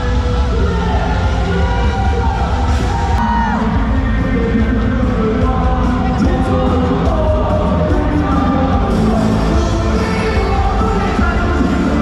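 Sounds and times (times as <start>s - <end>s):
crowd cheering: 0.0s - 4.6s
cheer song with heavy bass beat: 0.0s - 12.0s.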